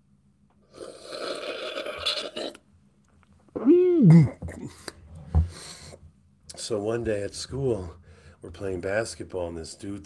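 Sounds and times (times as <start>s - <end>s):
man slurping a drink: 0.7s - 2.6s.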